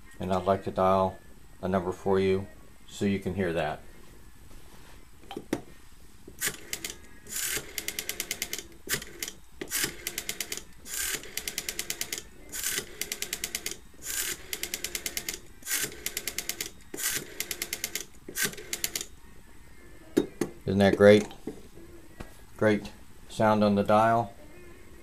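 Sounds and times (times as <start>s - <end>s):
rotary dial clicks: 6.4s - 19.1s.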